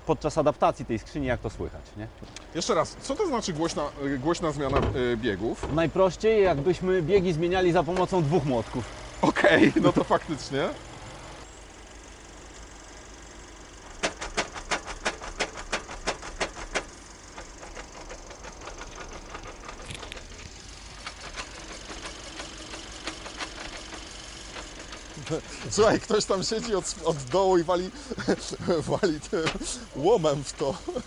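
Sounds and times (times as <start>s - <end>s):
engine humming: 0.0s - 31.0s
gearbox knocking: 4.5s - 8.4s, 14.0s - 30.8s.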